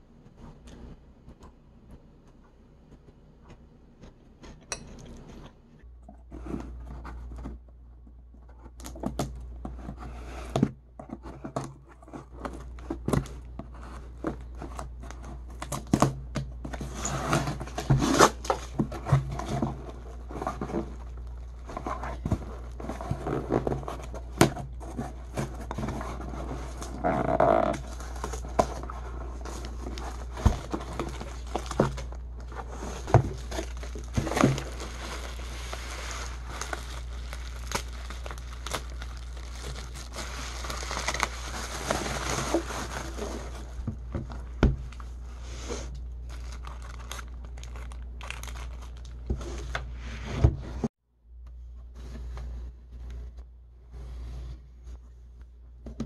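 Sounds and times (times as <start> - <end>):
packing paper crinkling and tearing: 12.2 - 45.2, 46.2 - 49.9.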